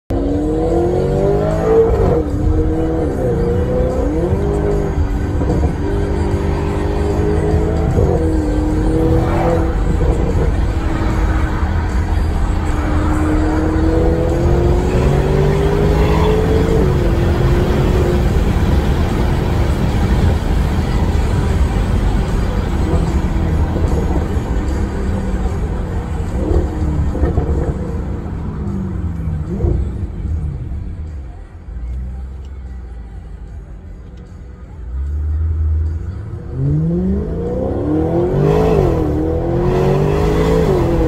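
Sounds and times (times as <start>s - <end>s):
car engine accelerating and upshifting: 0.1s - 41.0s.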